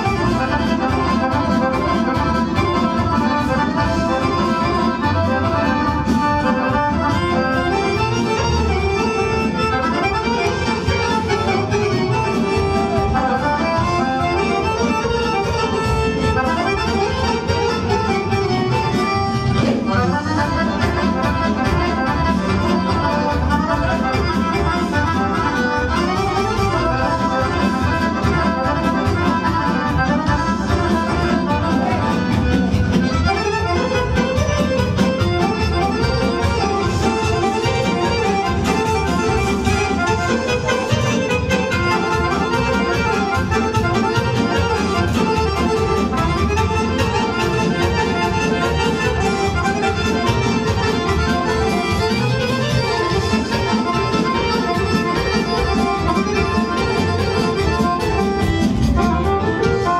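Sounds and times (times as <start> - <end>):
button accordion folk dance tune: 0.0 - 59.9.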